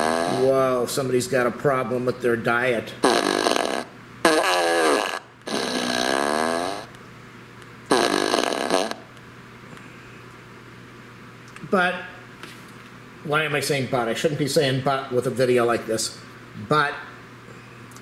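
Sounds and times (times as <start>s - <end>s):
fart sounds through speaker: 0.0s - 0.6s, 3.0s - 6.9s, 7.9s - 9.1s.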